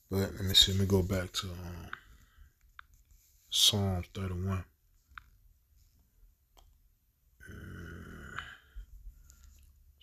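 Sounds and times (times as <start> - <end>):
man's rough throat sound: 7.4 - 8.7.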